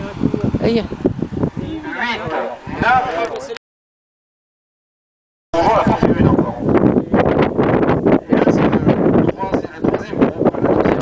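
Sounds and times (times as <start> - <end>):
wind buffeting microphone: 0.0 - 3.6, 5.6 - 11.0.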